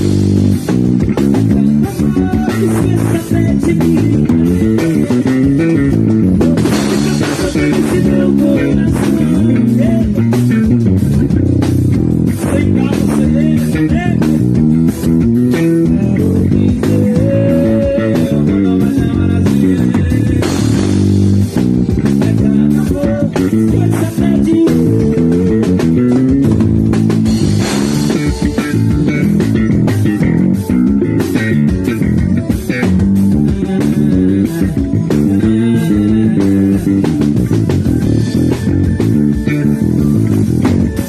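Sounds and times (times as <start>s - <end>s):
electric bass guitar plucked fingerstyle: 0.0s - 41.0s.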